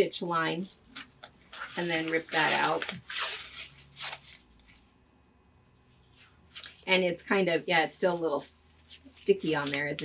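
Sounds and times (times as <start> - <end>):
paper tearing off fabric: 0.8 - 4.8.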